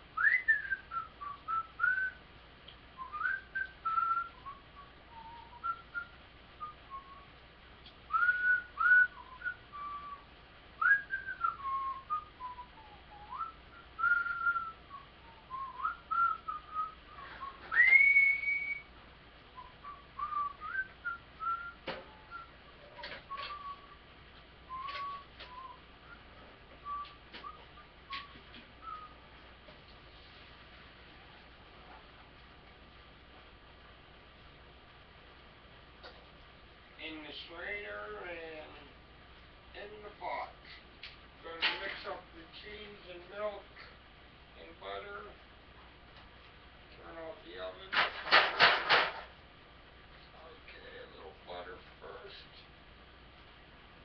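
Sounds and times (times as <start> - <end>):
person whistling a tune: 0.2 - 2.2, 3.0 - 7.3, 8.1 - 10.2, 10.8 - 18.9, 19.6 - 22.5, 23.3 - 24.0, 24.7 - 26.2, 26.8 - 29.2.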